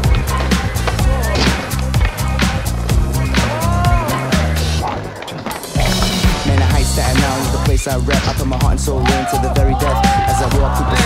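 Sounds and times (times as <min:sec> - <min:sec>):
hip-hop backing track: 0:00.0 - 0:11.0
skateboard wheels rolling on concrete: 0:00.0 - 0:11.0.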